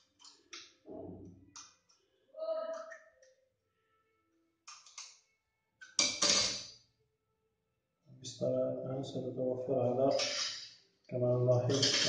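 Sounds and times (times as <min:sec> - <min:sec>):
wrench clattering on tile floor: 0:05.8 - 0:06.8, 0:11.7 - 0:12.0.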